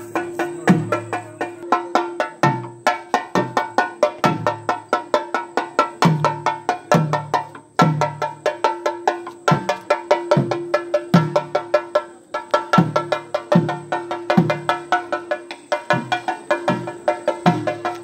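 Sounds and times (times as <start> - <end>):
deeper drum beat: 0.0 - 18.0
fast stick strokes on drums: 0.0 - 18.0
ringing cymbals: 0.0 - 18.0.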